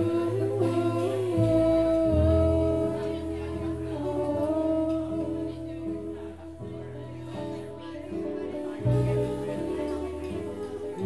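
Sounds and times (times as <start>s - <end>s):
low bass note: 0.0s - 7.8s
acoustic guitar: 0.0s - 11.0s
person singing long notes: 0.0s - 11.0s.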